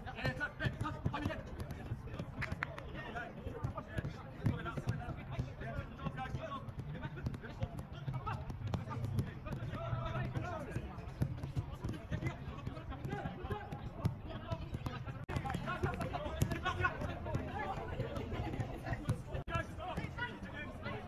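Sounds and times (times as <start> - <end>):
soccer ball kick thuds: 0.0 - 21.0
players calling: 0.2 - 21.0.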